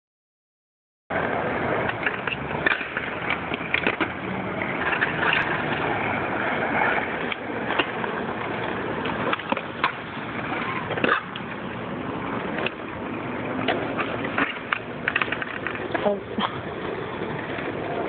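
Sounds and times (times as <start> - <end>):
outdoor noise rush: 1.1 - 18.0
skateboards clacking on ground: 1.1 - 18.0
skateboards rolling on asphalt: 1.1 - 18.0.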